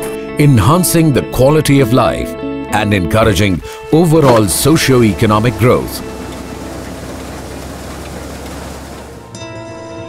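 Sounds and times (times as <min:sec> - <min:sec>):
threshing machine running: 0:04.0 - 0:09.4.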